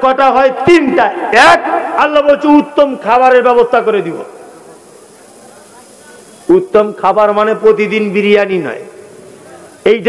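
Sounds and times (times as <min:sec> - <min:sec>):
man speaking over public address: 0:00.0 - 0:04.4, 0:06.5 - 0:09.0, 0:09.8 - 0:10.0
sound system hiss: 0:00.0 - 0:10.0.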